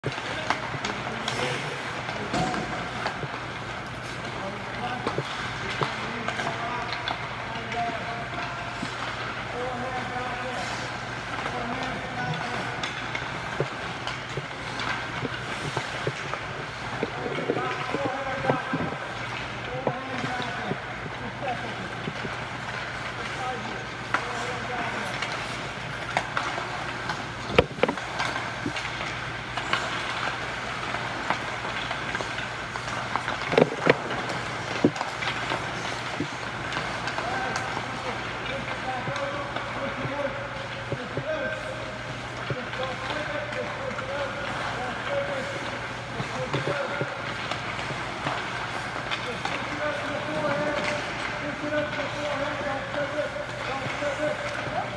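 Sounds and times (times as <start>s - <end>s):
skates scraping ice: 0.0s - 54.9s
stick tapping puck: 2.1s - 21.1s, 22.0s - 54.9s.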